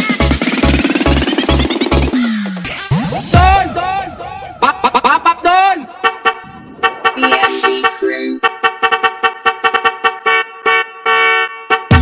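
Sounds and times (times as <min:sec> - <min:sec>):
heavy kick and bass beat: 0:00.0 - 0:06.1, 0:06.8 - 0:08.4
brassy horn stabs: 0:05.8 - 0:12.0.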